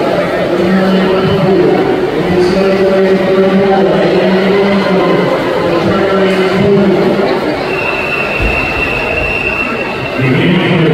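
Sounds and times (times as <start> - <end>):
hubbub of voices: 0.0 - 10.9.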